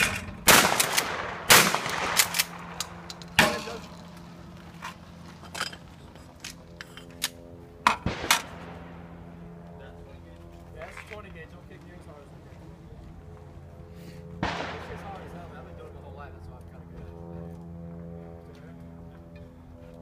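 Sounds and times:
shotgun shots: 0:00.0 - 0:03.8, 0:07.9 - 0:09.0, 0:14.4 - 0:15.5
steady low hum: 0:00.0 - 0:20.0.

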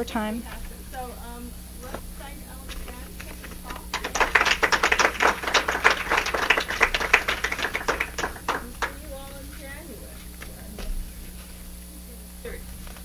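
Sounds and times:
audience applauding: 0:03.2 - 0:09.2.

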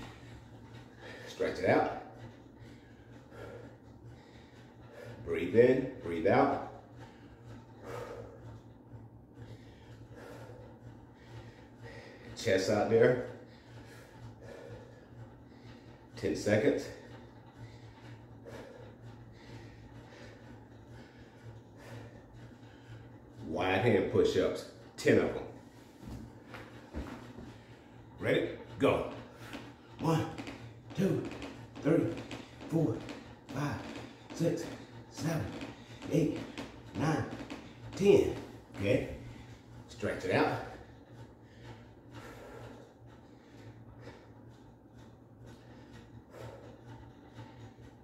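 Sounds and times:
man breathing: 0:00.0 - 0:23.5, 0:25.2 - 0:48.0
low steady hum: 0:00.0 - 0:48.0.

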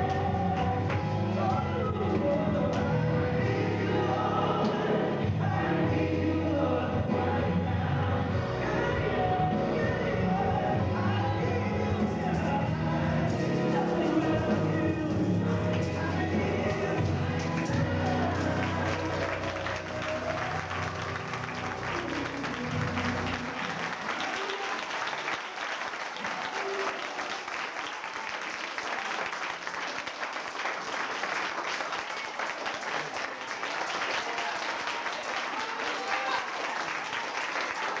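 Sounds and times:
congregation clapping: 0:00.0 - 0:05.3, 0:12.0 - 0:38.0
recorded gospel song: 0:00.0 - 0:27.9.

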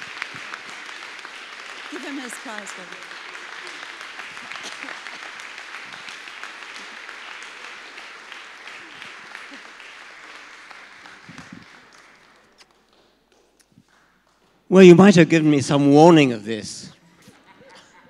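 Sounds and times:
voices among clapping: 0:00.0 - 0:14.6
audience applauding: 0:00.0 - 0:15.5.

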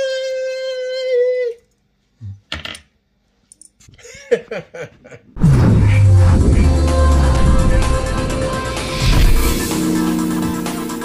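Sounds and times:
man singing a long high note: 0:06.2 - 0:11.0.

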